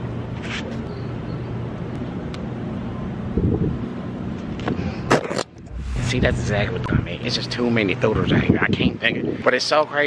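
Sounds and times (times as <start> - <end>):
low outdoor rumble: 5.5 - 8.4.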